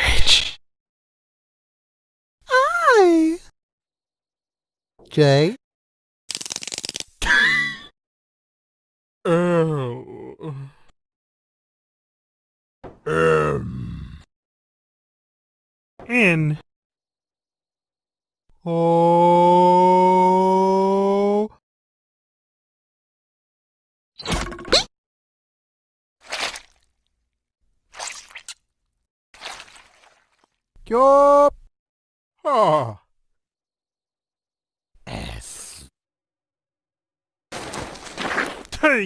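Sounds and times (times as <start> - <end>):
cartoon voice groaning: 2.5 - 3.4, 9.3 - 10.8.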